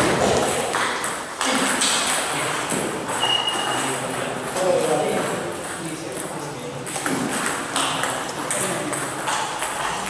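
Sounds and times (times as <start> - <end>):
table tennis ball bouncing: 0.0 - 10.0.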